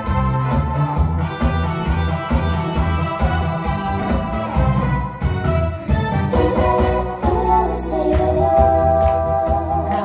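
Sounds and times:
pop ballad backing track over speakers: 0.0 - 10.0.

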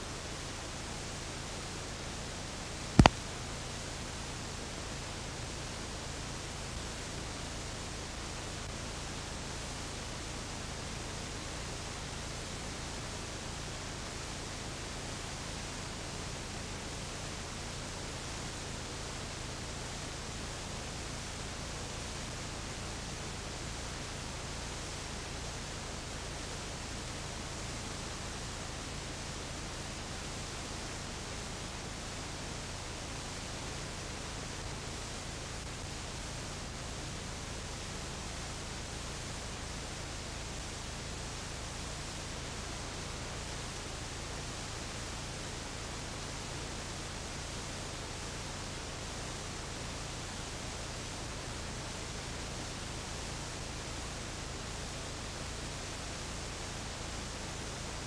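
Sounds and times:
tape hiss: 0.0 - 58.0.

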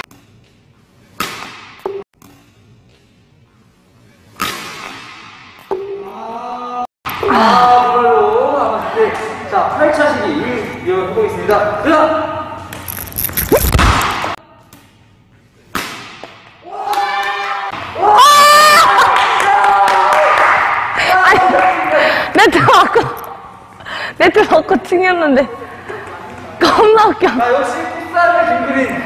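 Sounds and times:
badminton smash smack: 1.2 - 1.8, 4.4 - 5.6.

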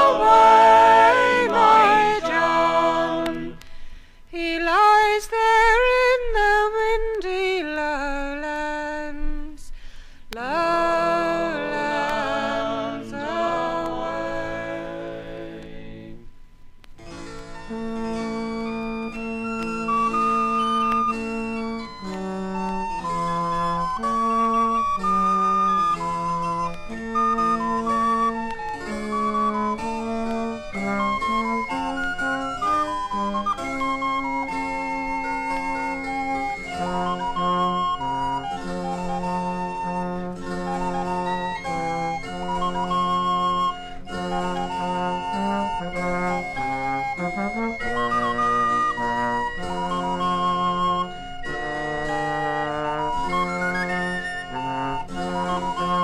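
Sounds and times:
flute-like folk melody: 0.0 - 9.6, 10.2 - 56.0.

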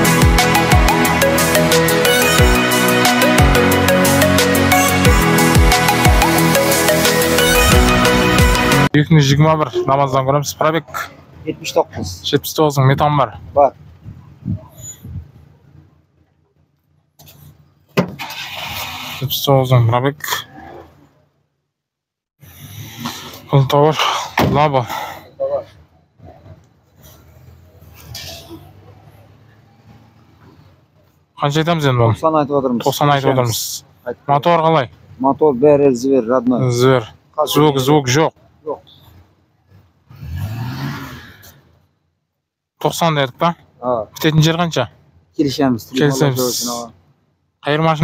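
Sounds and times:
rushing noise of door opening: 18.0 - 19.3
vehicle engine: 27.0 - 30.9.

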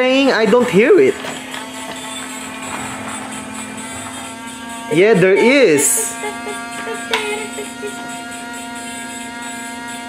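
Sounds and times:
toy electric motor whirring: 0.5 - 10.0.

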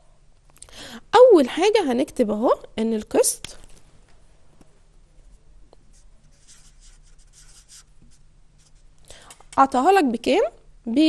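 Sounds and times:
marker scratching on whiteboard: 5.9 - 8.9.

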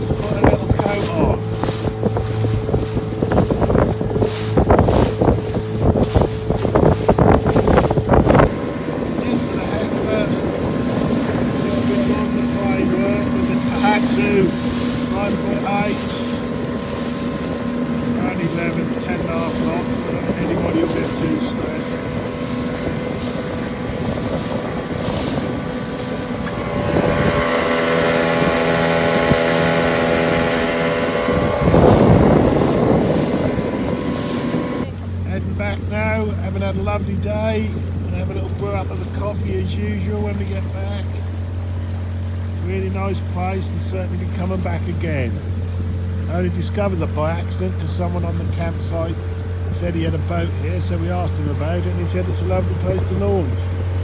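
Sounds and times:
small outboard motor running: 0.0 - 54.0
wind buffeting microphone: 0.0 - 54.0.

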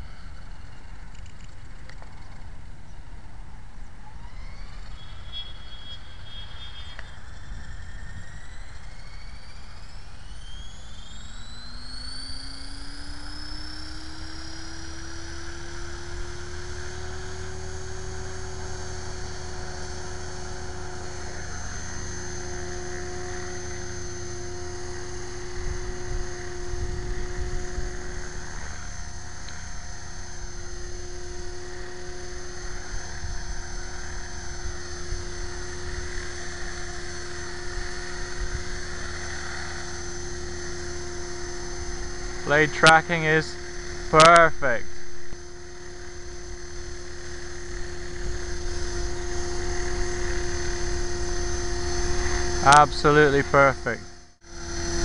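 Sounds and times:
electric motor whine: 0.0 - 55.0
rotor blade noise: 4.0 - 55.0.

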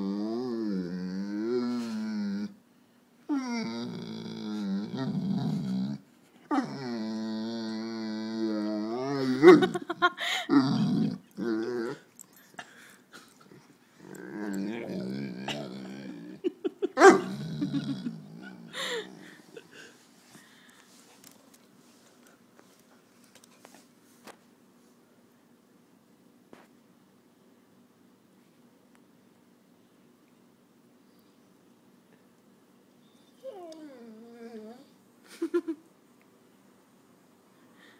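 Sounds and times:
dog whining: 3.3 - 9.8, 10.5 - 12.2, 33.0 - 35.0
dog barking: 17.0 - 17.3.

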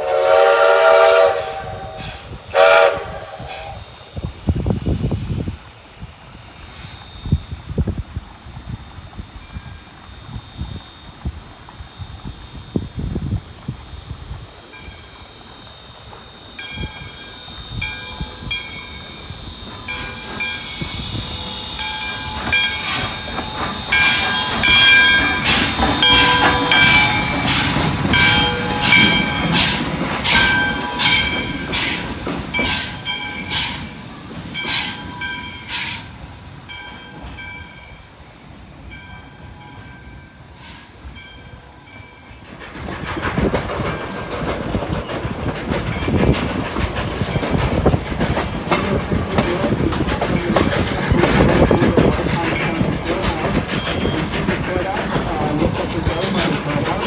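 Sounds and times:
train ride rushing noise: 0.0 - 57.0
train wheels clicking on rails: 0.0 - 57.0.

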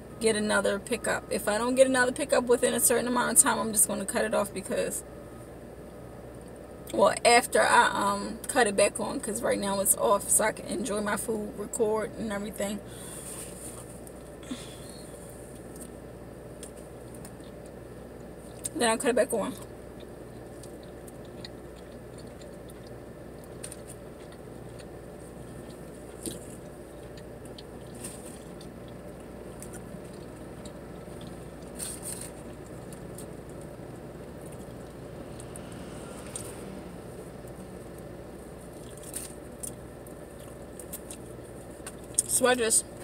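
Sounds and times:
car engine humming: 0.0 - 43.0
person chewing food: 19.9 - 36.7, 37.4 - 42.2.

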